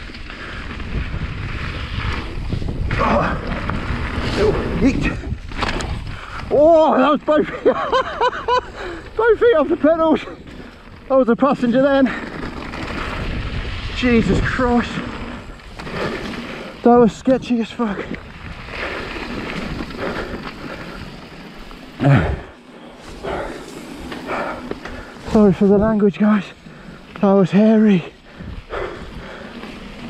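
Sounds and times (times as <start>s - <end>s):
wind on microphone: 0.0s - 6.7s, 12.8s - 16.5s
wind buffeting microphone: 0.0s - 11.1s, 12.1s - 26.0s, 28.1s - 30.0s
tyres rolling over loose stones: 0.0s - 30.0s
man talking: 6.5s - 7.8s, 9.2s - 10.4s, 11.1s - 12.2s, 14.0s - 15.1s, 16.8s - 18.2s, 25.2s - 26.6s, 27.2s - 28.2s.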